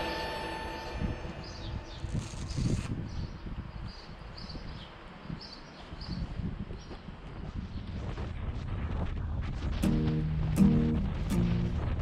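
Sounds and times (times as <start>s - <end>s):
background music: 0.0s - 2.0s, 9.8s - 12.0s
wind buffeting microphone: 0.8s - 12.0s
small birds chirping: 1.4s - 8.0s.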